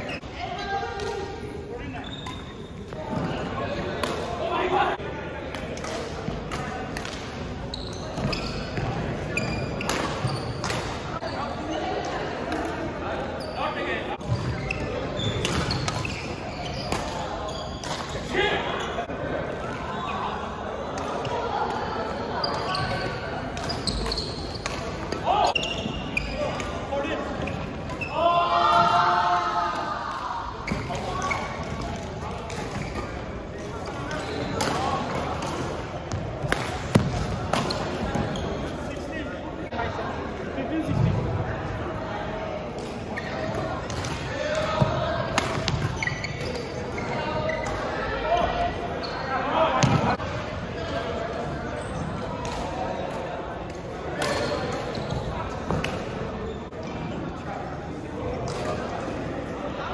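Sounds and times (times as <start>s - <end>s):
voices echoing in hall: 0.0s - 59.9s
shoes squeaking on court: 1.5s - 3.4s, 7.6s - 12.1s, 13.4s - 19.1s, 22.1s - 28.2s, 30.6s - 39.7s, 43.1s - 44.0s, 44.7s - 50.2s, 54.2s - 57.2s
racket hitting shuttlecock: 45.3s - 46.0s.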